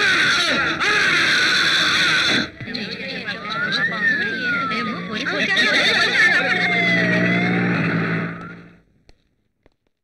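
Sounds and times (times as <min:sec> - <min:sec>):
police siren wailing: 0:03.2 - 0:08.8.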